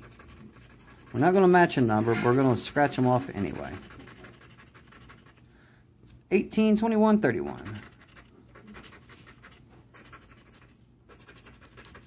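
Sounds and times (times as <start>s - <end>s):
scratching a scratch-off ticket: 0.0s - 5.4s, 7.3s - 12.0s.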